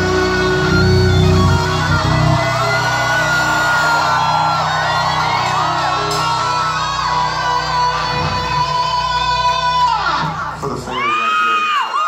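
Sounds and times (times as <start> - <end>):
loud live rock music: 0.0 - 11.3.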